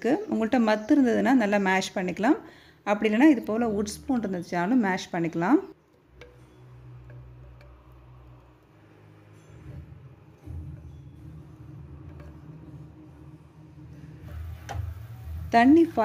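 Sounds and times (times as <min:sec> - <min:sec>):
spatula tapping pot: 0:06.0 - 0:13.3
spatula mashing food in pot: 0:06.0 - 0:13.5.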